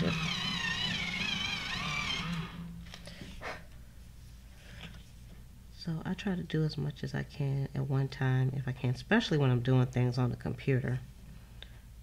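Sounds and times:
electric pencil sharpener whirring: 0.0s - 2.9s.

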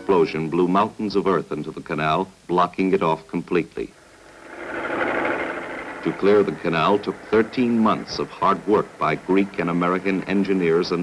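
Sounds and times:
steady machinery noise: 3.9s - 11.0s.

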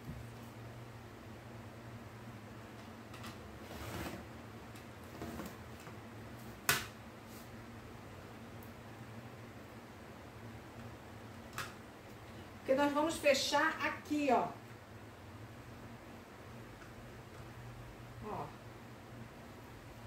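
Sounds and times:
low steady hum: 0.0s - 20.0s
rotary cutter scraping fabric: 3.6s - 4.2s.

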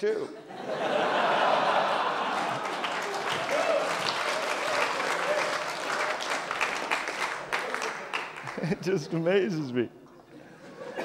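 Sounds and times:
audience applauding: 1.3s - 9.3s.

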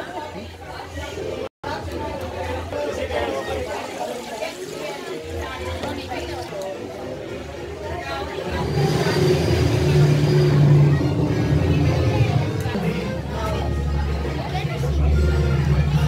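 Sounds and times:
voices chattering: 0.0s - 16.0s
background music: 0.2s - 16.0s.

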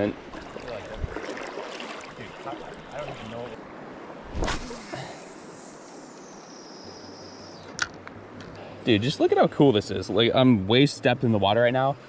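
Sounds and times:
fishing rod swish: 4.3s - 5.0s.

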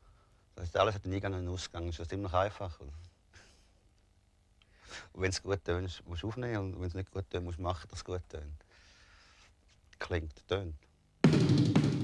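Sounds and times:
man breathing softly: 0.0s - 0.5s, 4.6s - 5.2s, 8.6s - 9.6s
man speaking: 0.6s - 3.0s, 5.0s - 8.6s, 10.0s - 10.8s.

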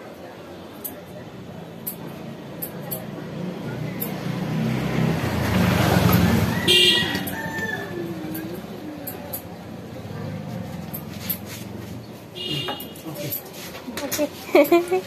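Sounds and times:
road vehicle passing: 1.0s - 15.0s
short horn toot: 12.4s - 13.0s.

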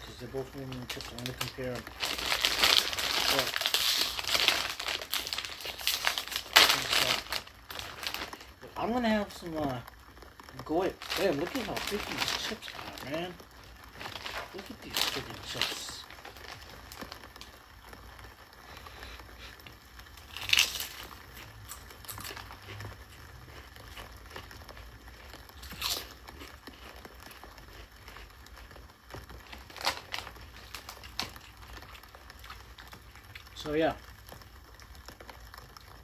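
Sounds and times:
chips being bitten and chewed: 0.0s - 36.0s
plastic chip bag crinkling: 0.0s - 36.0s.

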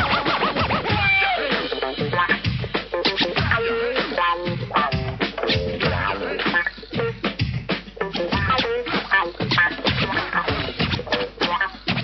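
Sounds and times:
hip hop beat: 0.0s - 12.0s
turntable scratching: 0.0s - 12.0s.

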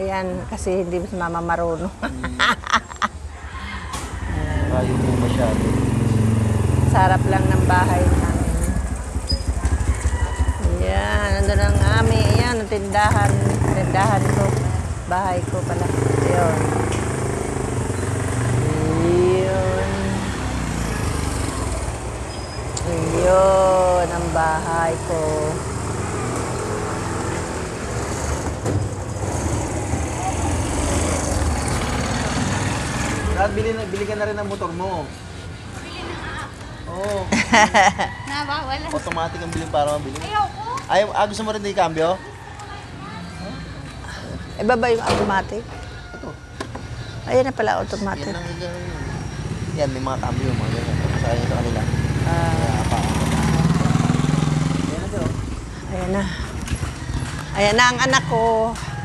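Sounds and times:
street noise: 0.0s - 59.0s
vehicle engine passing by: 3.6s - 36.2s, 47.2s - 59.0s.

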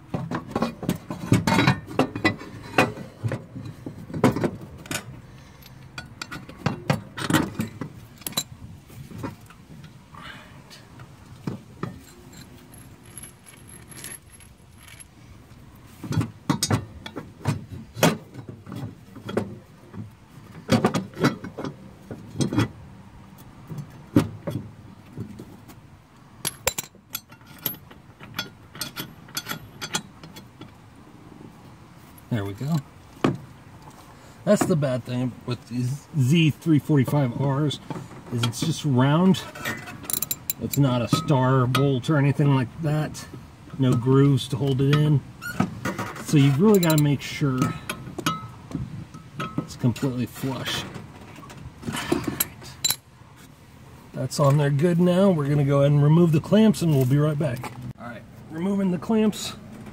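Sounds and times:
ratchet and metal blade clinks: 11.9s - 15.2s, 40.1s - 40.8s, 46.7s - 47.1s.

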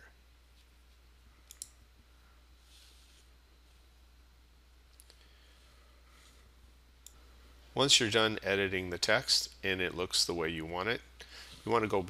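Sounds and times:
faint low hum: 0.0s - 12.0s
computer mouse clicks: 1.4s - 1.8s.

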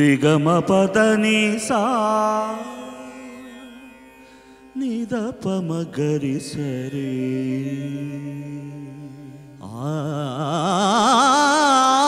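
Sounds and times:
devotional singing: 0.0s - 3.5s, 4.8s - 12.0s.

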